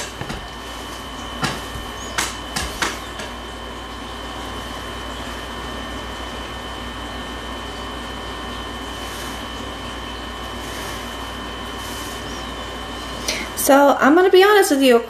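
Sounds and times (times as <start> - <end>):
faint high whine: 0.0 - 14.1.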